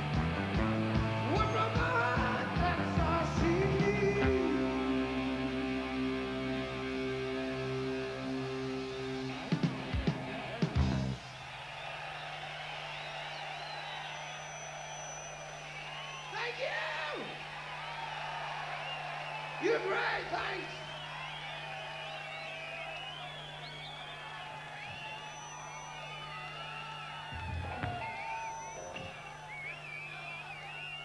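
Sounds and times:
crowd cheering and yelling: 0:00.0 - 0:31.0
low stage hum: 0:20.6 - 0:31.0
drum hits: 0:27.4 - 0:29.2.

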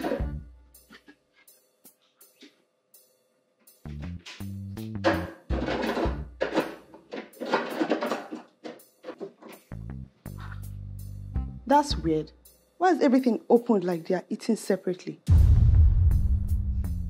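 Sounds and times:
film score with bass and drum hits: 0:03.8 - 0:06.4, 0:09.7 - 0:12.7, 0:15.3 - 0:17.0.

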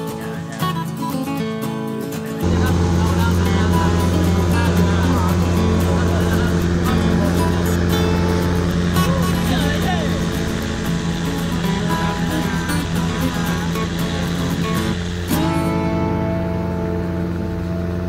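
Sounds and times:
boat engine running: 0:00.0 - 0:18.0
guitar music: 0:00.0 - 0:18.0
voices: 0:00.0 - 0:18.0.

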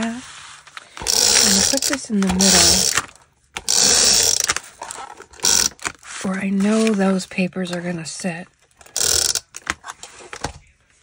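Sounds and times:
tape dispenser ratcheting whirr: 0:00.9 - 0:07.0, 0:08.8 - 0:09.8.

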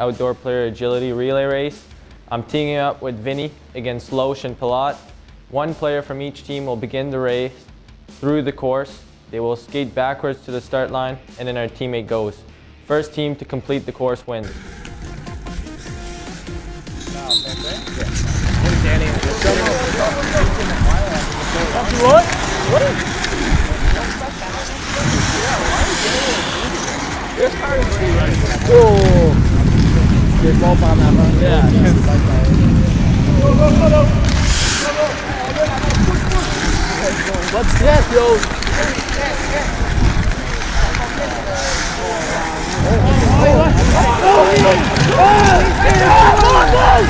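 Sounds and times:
skate blades hissing on ice: 0:14.5 - 0:30.4, 0:32.6 - 0:47.0
players calling out: 0:16.3 - 0:31.9, 0:32.9 - 0:47.0
steady low rumble: 0:17.9 - 0:47.0.

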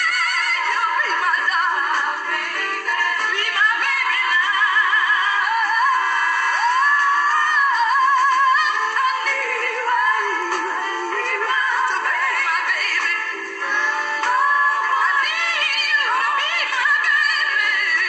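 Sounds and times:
woman singing with vibrato: 0:00.0 - 0:18.0.

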